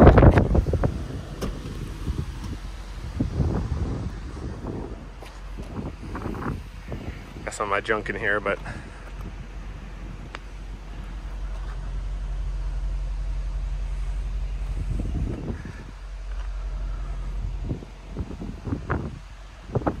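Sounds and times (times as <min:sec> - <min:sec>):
vehicle engine humming: 0:00.0 - 0:20.0.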